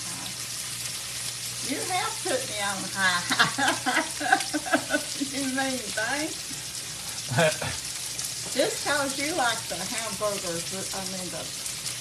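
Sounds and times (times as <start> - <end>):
meat sizzling in a frying pan: 0.0 - 12.0.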